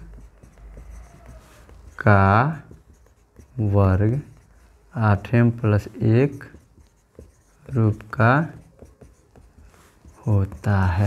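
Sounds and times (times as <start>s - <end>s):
marker pen writing on whiteboard: 0.0s - 11.0s.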